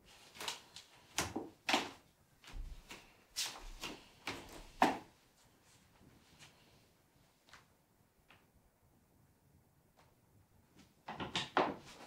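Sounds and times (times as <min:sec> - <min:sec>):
footsteps on hardwood floor: 0:02.4 - 0:04.8.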